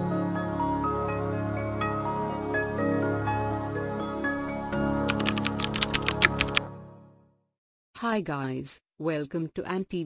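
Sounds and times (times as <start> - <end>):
keyboard typing clicks: 5.1 - 6.6.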